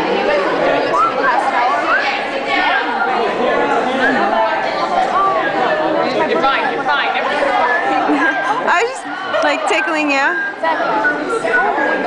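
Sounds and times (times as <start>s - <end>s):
chatter of young voices: 0.0s - 12.0s.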